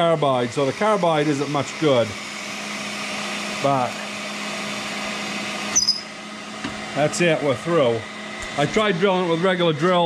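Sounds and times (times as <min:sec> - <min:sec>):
machine motor hum: 0:01.7 - 0:10.0
high squeal of cutting bit: 0:05.7 - 0:06.2.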